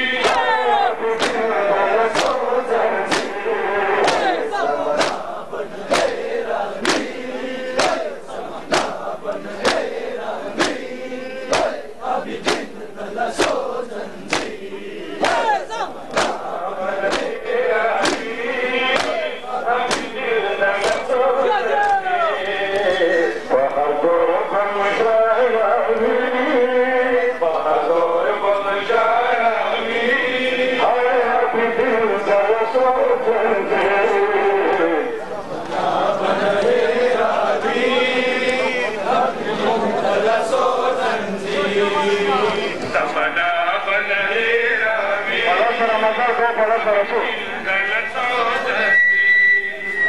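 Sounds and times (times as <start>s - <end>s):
crowd chanting in unison: 0.0s - 49.0s.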